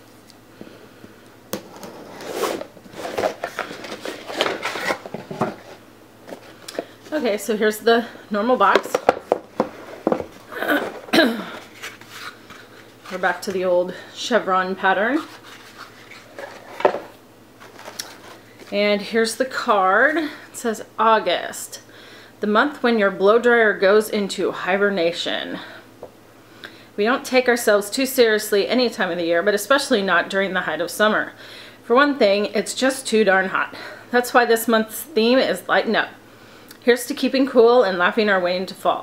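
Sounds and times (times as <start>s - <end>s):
packaging rustling and crinkling: 1.6s - 7.2s, 8.7s - 13.5s, 15.2s - 18.8s.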